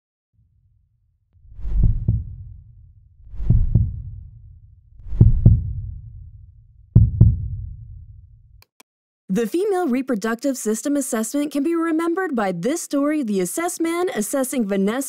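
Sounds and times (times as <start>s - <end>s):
low rumble: 1.4s - 8.6s
heartbeat double thump: 1.5s - 8.3s.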